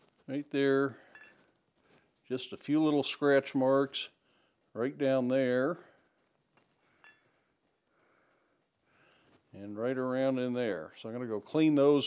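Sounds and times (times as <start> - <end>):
faint metallic clink: 1.0 - 1.5, 6.9 - 7.4.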